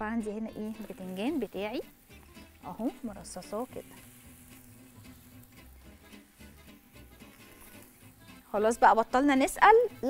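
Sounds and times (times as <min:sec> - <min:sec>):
eggplant sizzling on grill: 0:00.0 - 0:10.0
faint background music: 0:00.0 - 0:10.0.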